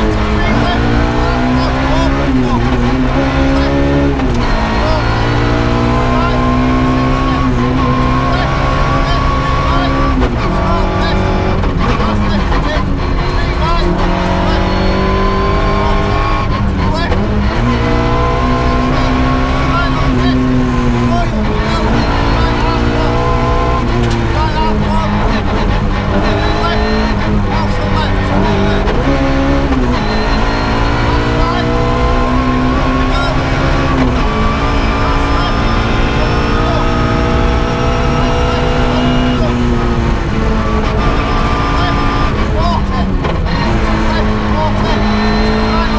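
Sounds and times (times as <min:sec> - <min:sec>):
rally car engine revving: 0:00.0 - 0:45.9.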